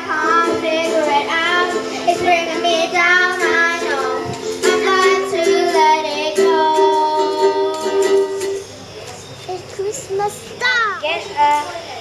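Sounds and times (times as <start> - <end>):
girls singing into microphone: 0.0 - 8.4
held instrumental accompaniment: 0.0 - 9.7.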